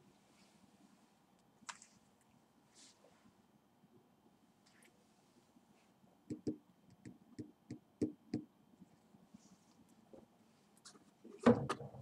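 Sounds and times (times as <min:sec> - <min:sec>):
pen tapping on paper: 0:06.3 - 0:08.5.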